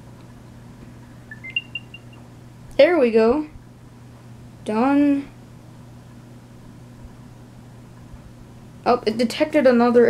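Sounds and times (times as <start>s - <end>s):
electronic chime beeps: 1.3s - 2.2s.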